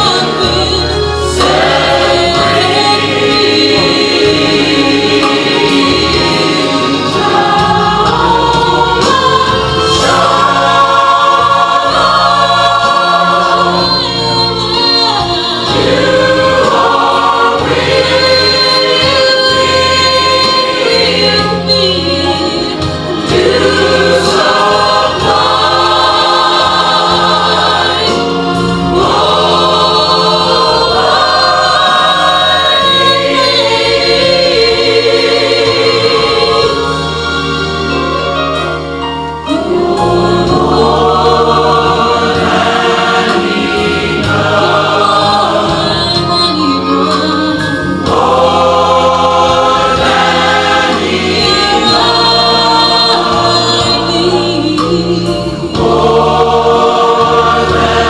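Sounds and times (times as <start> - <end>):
church choir singing gospel: 0.0 - 58.0
instrumental accompaniment: 0.0 - 58.0.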